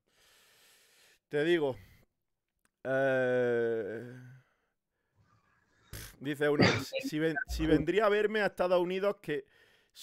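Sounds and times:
speech: 6.2 - 9.5.

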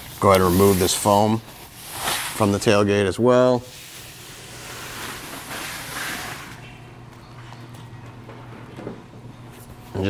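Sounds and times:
packing foam rustling and crinkling: 0.2 - 2.8.

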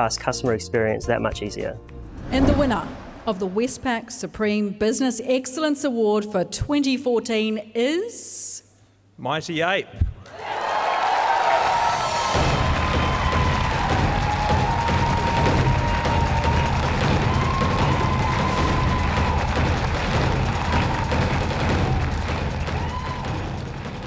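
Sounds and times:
audience cheering and applauding: 10.3 - 24.0.

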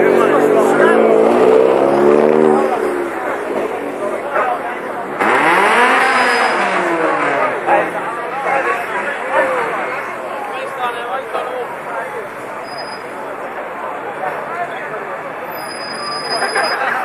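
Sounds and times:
car engine revving: 0.0 - 8.5
crowd voices: 0.0 - 17.0.

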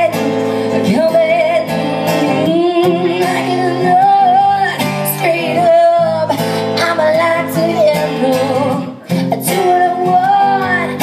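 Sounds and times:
acoustic guitar: 0.0 - 11.0
woman singing into a microphone: 0.0 - 11.0.

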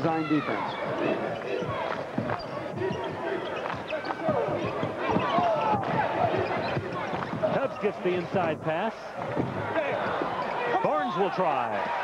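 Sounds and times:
crowd and players' voices: 0.0 - 12.0.

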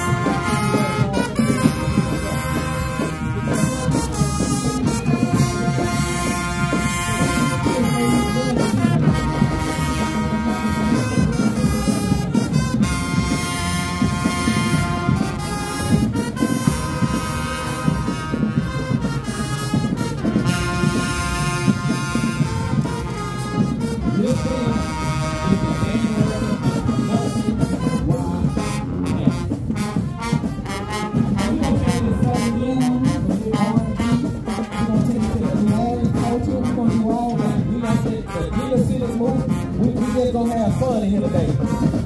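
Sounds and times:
brass held chords: 0.0 - 42.0
marching band playing: 0.0 - 42.0.

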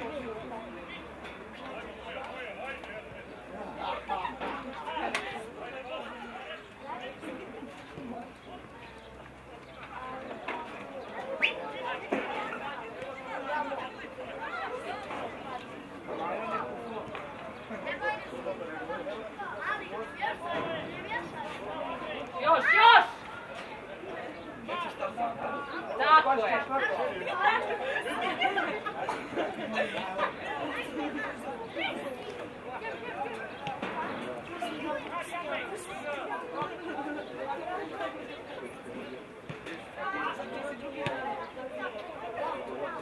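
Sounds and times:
people calling and talking: 0.0 - 43.0
people chatting: 0.0 - 43.0.

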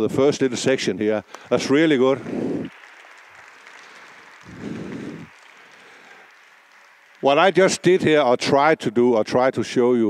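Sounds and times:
audience applause: 1.4 - 8.8.

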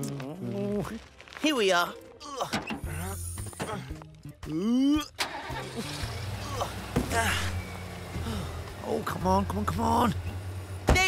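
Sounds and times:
cartoon truck engine revving: 5.1 - 8.6
engine idling: 5.2 - 11.0.

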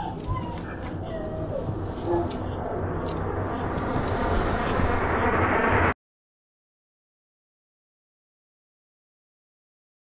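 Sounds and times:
dense steady rumbling: 0.0 - 5.9.

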